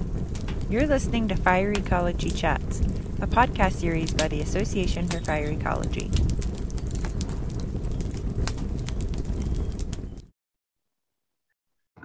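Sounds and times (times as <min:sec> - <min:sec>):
fire roaring and crackling: 0:00.0 - 0:10.3.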